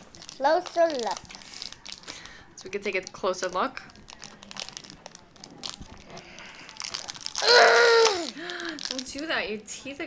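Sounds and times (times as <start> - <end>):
plastic wrapper crinkling: 0.0 - 9.6
child's strained vocal sound: 7.4 - 8.4.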